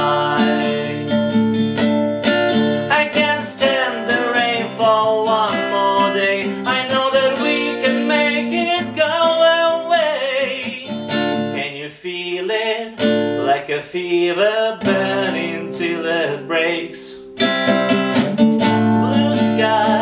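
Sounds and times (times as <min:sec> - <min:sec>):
man singing wordless melody: 0:00.0 - 0:01.2, 0:02.8 - 0:17.3, 0:18.9 - 0:20.0
acoustic guitar strumming chords: 0:00.0 - 0:20.0.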